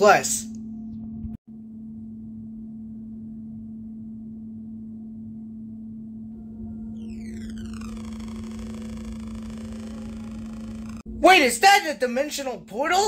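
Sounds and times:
electronic hum: 0.5s - 11.2s
dense synth drone: 0.6s - 11.2s
falling synth sweep: 6.3s - 11.1s.

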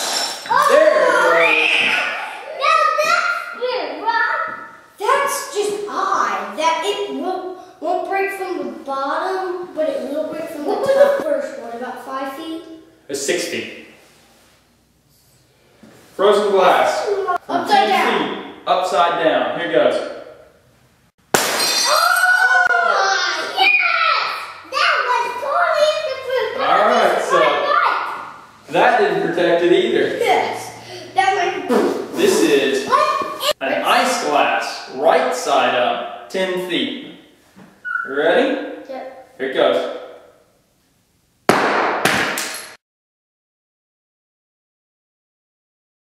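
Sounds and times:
glass bouncing and clattering: 0.0s - 0.6s, 21.4s - 22.0s
glass crashing onto broken glass: 0.0s - 0.6s, 21.3s - 22.2s
glass shattering on floor: 0.0s - 0.7s, 21.3s - 22.2s
children shrieking: 0.5s - 2.9s, 21.8s - 24.4s.

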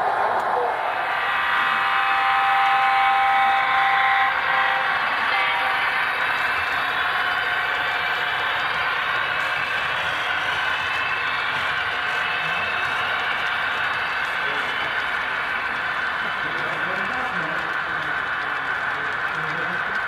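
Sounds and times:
model train rolling on track: 0.6s - 20.0s
model train horn: 1.7s - 6.6s.

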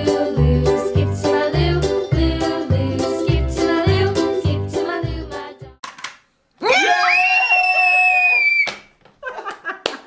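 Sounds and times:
loud held cheer: 6.6s - 8.9s.

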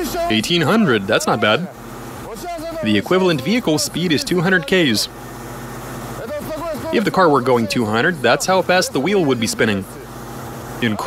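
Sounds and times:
engine and spinning wheel hum: 0.0s - 11.0s.

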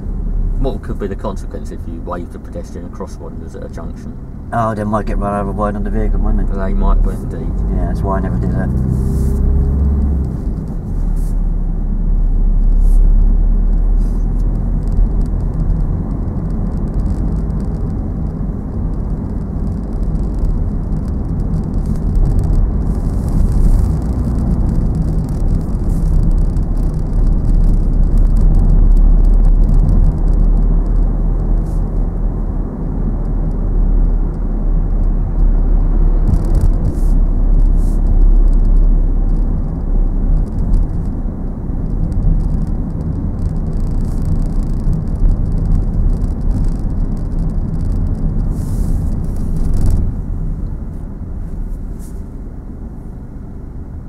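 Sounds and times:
car engine and road rumble: 0.0s - 54.0s
tyres on wet road: 0.5s - 53.3s.

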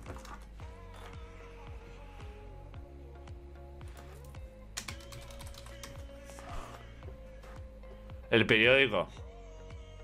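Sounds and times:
quiet background music: 0.0s - 10.0s
computer keyboard typing: 4.8s - 6.0s.

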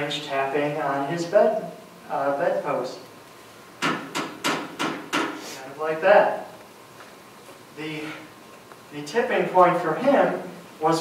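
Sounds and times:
sharp knocks: 3.8s - 5.5s.

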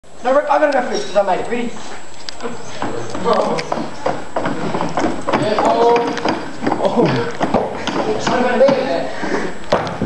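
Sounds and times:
feet climbing onto chairs: 0.7s - 10.0s.

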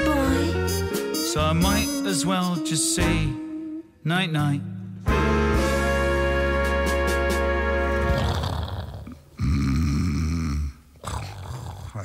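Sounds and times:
music: 0.0s - 8.4s
deep rasping vocal rumble: 8.0s - 12.0s.

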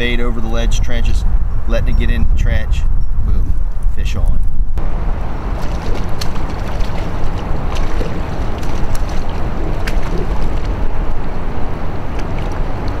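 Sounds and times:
wind buffeting microphone: 0.0s - 13.0s
water lapping: 4.9s - 13.0s.

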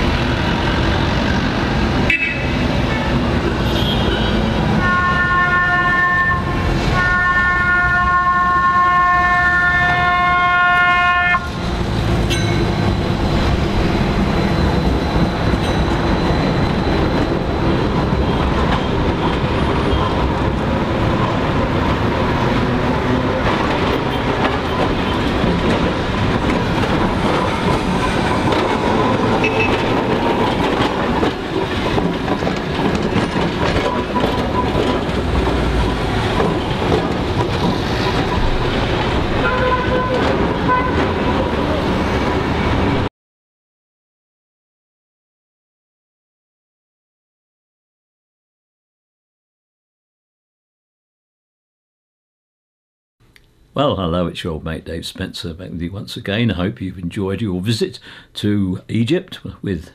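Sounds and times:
trams rolling on rails: 0.0s - 43.1s.

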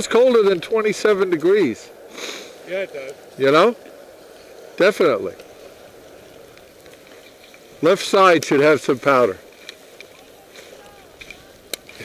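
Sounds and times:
skis sliding over snow: 0.0s - 12.0s.

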